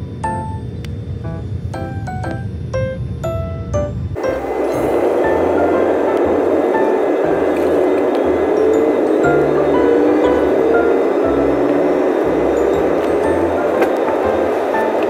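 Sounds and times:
airliner cabin engine roar: 0.0s - 15.0s
faint rising tone: 0.0s - 15.0s
music with chime-like notes: 1.3s - 15.0s.

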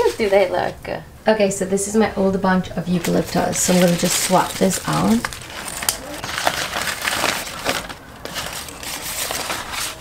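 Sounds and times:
flower stems rustling: 2.8s - 10.0s
paper wrapping crinkling: 2.9s - 10.0s.

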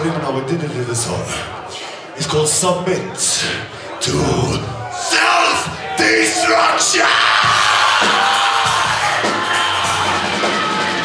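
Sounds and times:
heavy metal band playing: 5.0s - 11.0s.

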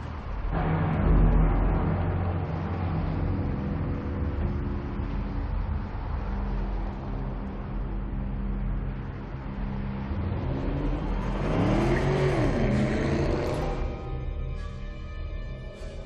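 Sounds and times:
car engine idling and revving: 0.0s - 16.0s.

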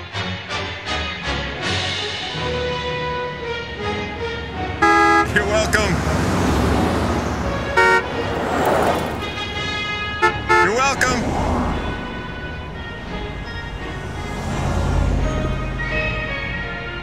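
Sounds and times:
vehicles passing: 0.0s - 17.0s
car horn honking: 1.2s - 17.0s.

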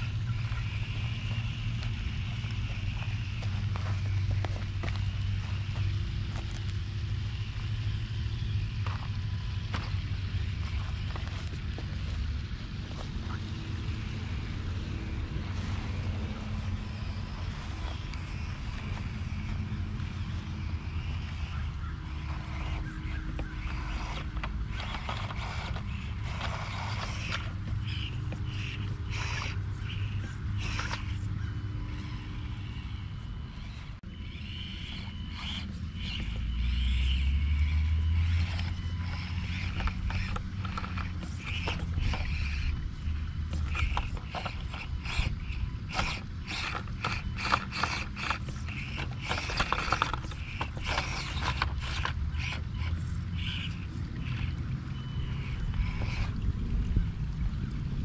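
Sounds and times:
small electric motor whirring: 0.0s - 57.6s
steady low rumble: 0.0s - 58.0s
ratchet-like gear clicks: 34.4s - 54.5s.

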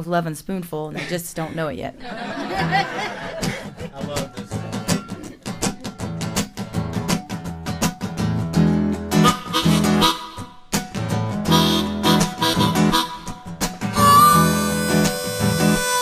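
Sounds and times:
acoustic guitar strumming: 3.4s - 16.0s
harmonica held notes: 9.2s - 10.6s, 11.4s - 16.0s.

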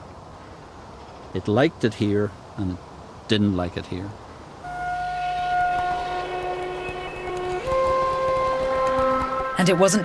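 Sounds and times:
music of sustained held notes: 4.6s - 10.0s.

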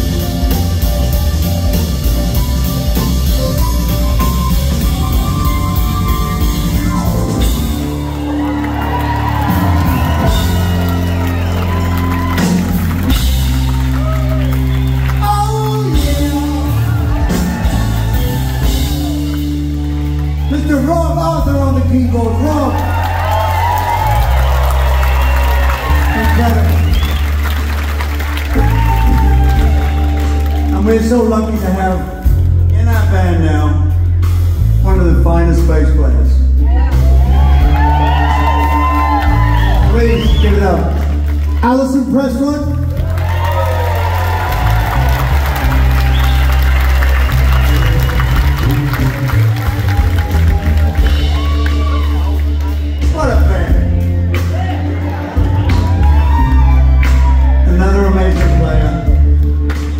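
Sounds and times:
crowd cheering and applauding: 0.0s - 33.5s, 36.6s - 59.9s
held bass notes: 0.0s - 59.9s
live rock band playing: 0.0s - 59.9s.

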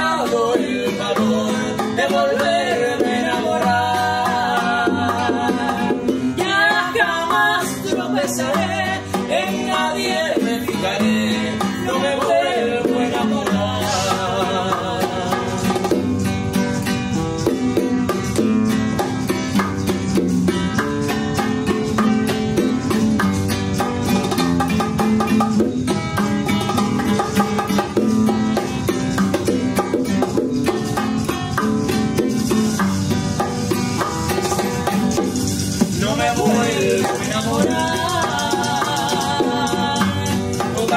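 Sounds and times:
woman singing a ballad: 0.0s - 15.3s, 36.6s - 40.9s
acoustic guitar strummed and picked: 0.0s - 40.9s
bongos: 0.0s - 40.9s
hand drums: 0.0s - 40.9s.

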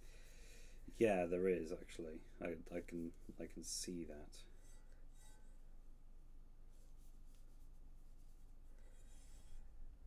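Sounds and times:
soft rustles of yarn: 0.0s - 10.0s.

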